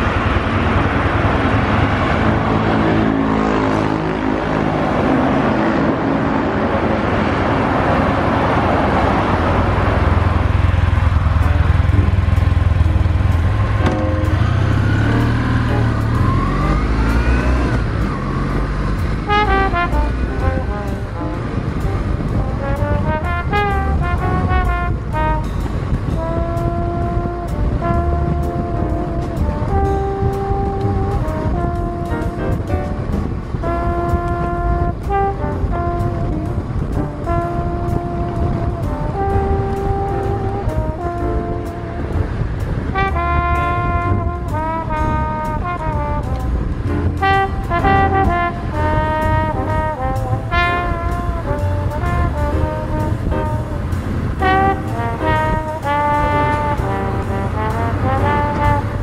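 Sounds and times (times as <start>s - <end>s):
motorcycle engine running: 9.3s - 59.0s.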